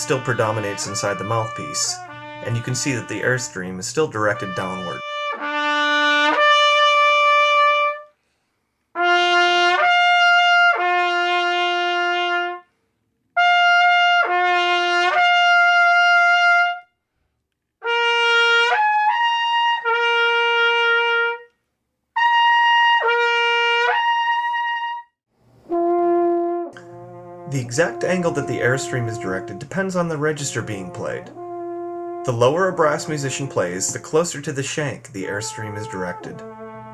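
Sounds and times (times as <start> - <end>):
trumpet playing slurred phrases: 0.0 - 8.0, 9.0 - 12.6, 13.4 - 16.8, 17.8 - 21.4, 25.7 - 36.9.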